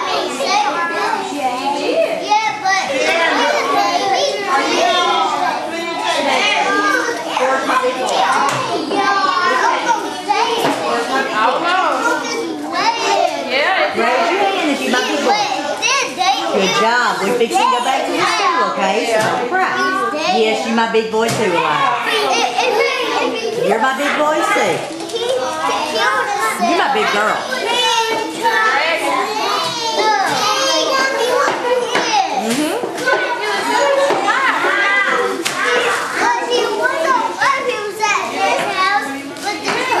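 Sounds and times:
young children shouting and chattering: 0:00.0 - 0:40.0.

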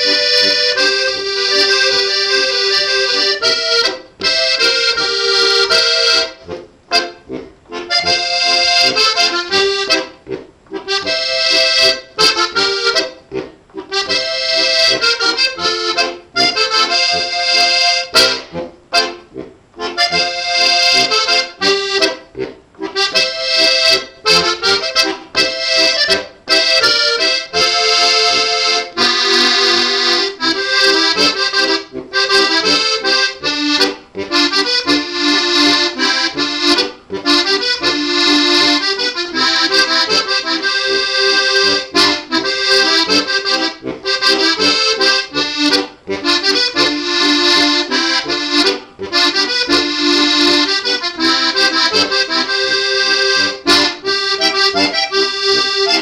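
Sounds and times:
button accordion playing folk tune: 0:00.0 - 0:56.0.

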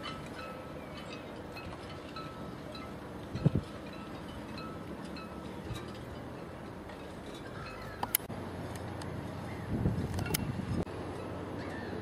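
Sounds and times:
rigging clinking against masts: 0:00.0 - 0:12.0
wind: 0:00.0 - 0:12.0.

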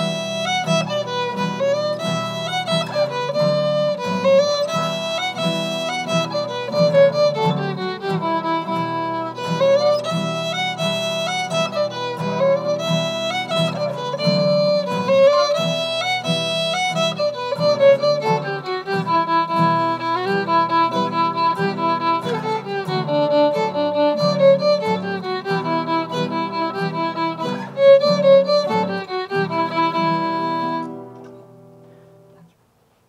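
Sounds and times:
fiddle playing a melody: 0:00.0 - 0:32.5
strummed acoustic guitar: 0:00.0 - 0:32.6.

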